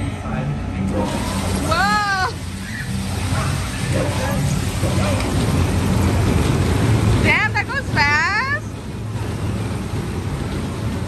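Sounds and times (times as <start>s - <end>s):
ride machinery hum and rumble: 0.0s - 11.0s.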